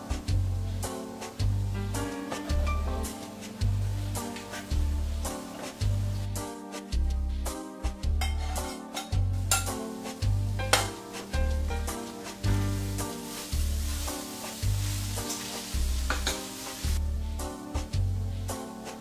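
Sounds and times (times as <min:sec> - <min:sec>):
background music with bass line: 0:00.0 - 0:19.0
food sizzling in a pan: 0:00.0 - 0:19.0.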